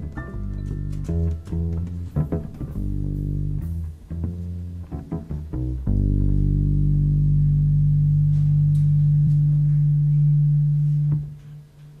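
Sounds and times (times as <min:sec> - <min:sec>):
deep instrument note held: 0:05.9 - 0:12.0.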